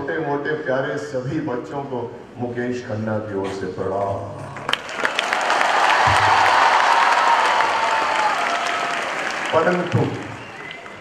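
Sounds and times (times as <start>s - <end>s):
audience applauding: 4.6s - 11.0s.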